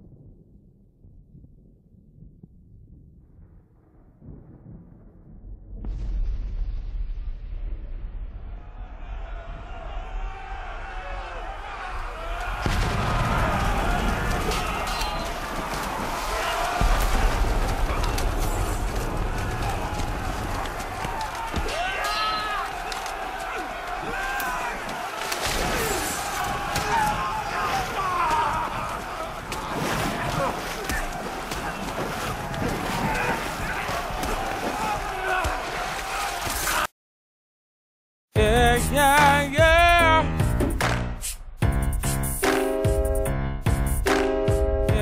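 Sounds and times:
men yelling and screaming: 8.9 - 36.9
clashes and thuds of fighting: 11.7 - 36.9.

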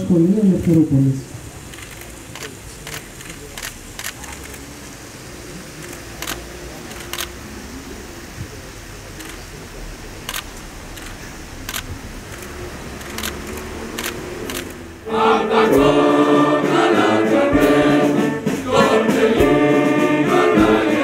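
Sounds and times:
low outdoor ambience: 0.0 - 21.0
camera shutters clicking: 1.7 - 4.6, 5.8 - 7.4, 10.3 - 14.8.

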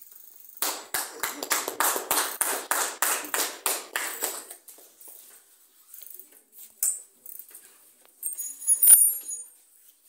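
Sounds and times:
hands clapping: 0.6 - 4.9.

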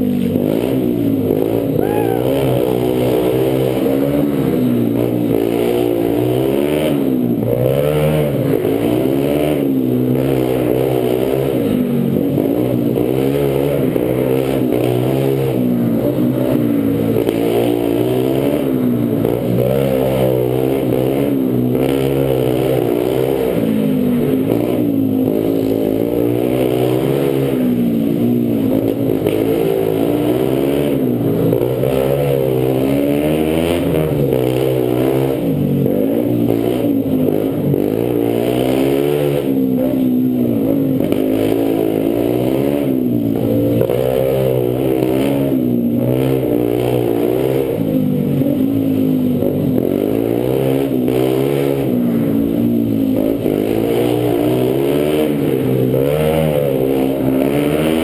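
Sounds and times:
dirt bike engine revving: 0.0 - 58.0.

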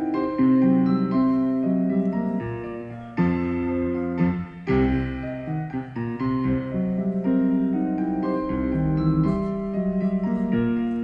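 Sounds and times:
solo piano stomp piece: 0.0 - 11.0.

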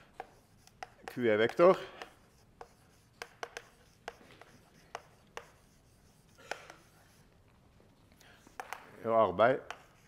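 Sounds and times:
chalk tapping on blackboard: 0.0 - 7.3, 8.4 - 10.0
chalk scratching on blackboard: 0.0 - 7.4, 8.4 - 10.0.

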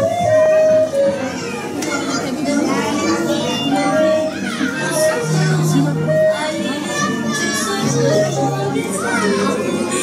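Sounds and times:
background music: 0.0 - 10.0
children's voices: 0.0 - 10.0
crowd chatter: 0.0 - 10.0.

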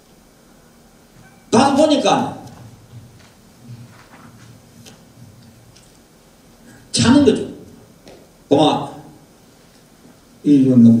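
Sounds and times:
quiet hum: 0.0 - 11.0.

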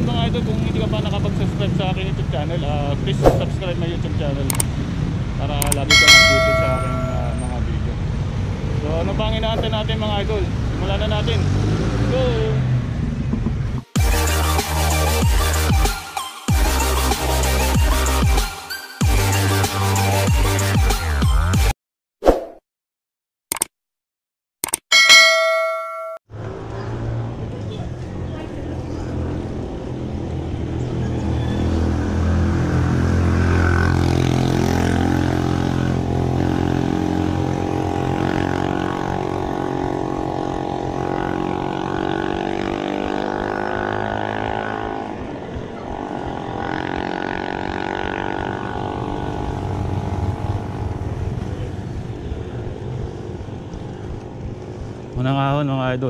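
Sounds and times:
vehicle engine droning: 0.0 - 13.8, 25.2 - 55.2.

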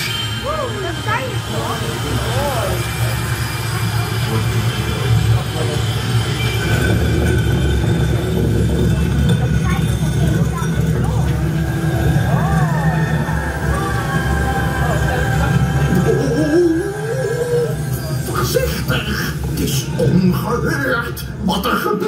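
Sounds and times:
crowd voices and exclamations: 0.0 - 21.0
steady low rumble: 0.2 - 21.6.

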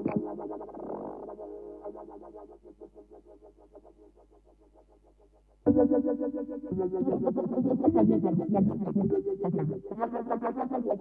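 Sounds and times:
choppy synthesizer pattern: 0.0 - 4.2, 5.7 - 11.0.

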